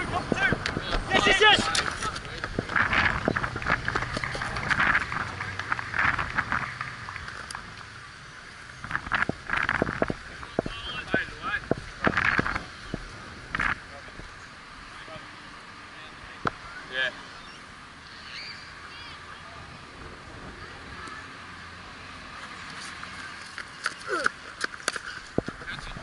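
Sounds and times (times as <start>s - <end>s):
players shouting and calling: 0.0s - 2.7s, 10.3s - 13.2s.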